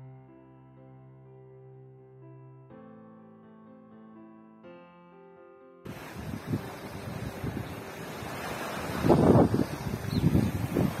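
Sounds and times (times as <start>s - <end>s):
waves washing against rocks: 5.9s - 11.0s
wind buffeting microphone: 5.9s - 11.0s.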